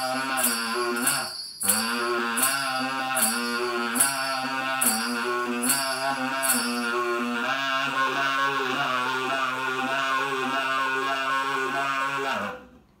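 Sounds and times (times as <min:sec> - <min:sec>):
buzzy kazoo saxophone: 0:00.0 - 0:12.9.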